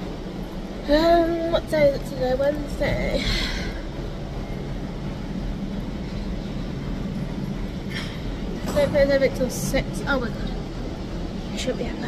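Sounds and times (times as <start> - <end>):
machinery hum and rumble: 0.0 - 12.0.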